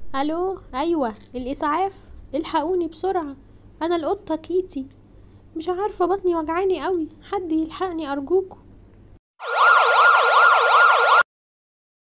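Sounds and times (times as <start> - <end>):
ambulance siren wailing: 9.4 - 11.3.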